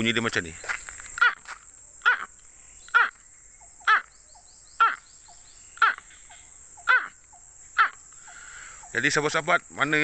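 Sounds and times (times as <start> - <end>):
man imitating a baby crocodile call: 1.2 - 3.2, 3.8 - 4.1, 4.8 - 5.0, 5.8 - 6.1, 6.8 - 7.2, 7.8 - 8.0.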